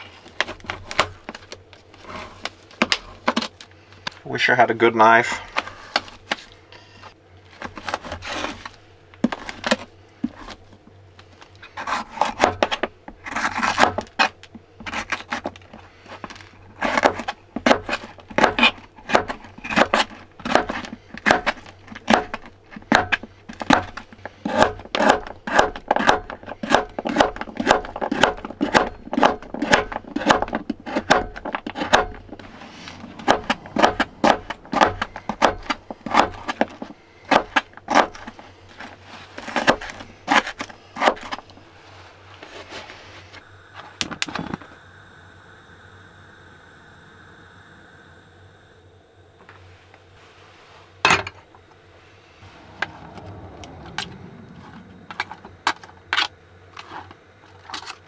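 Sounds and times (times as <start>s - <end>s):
knife chopping on cutting board: 16.8s - 32.2s, 33.2s - 36.6s.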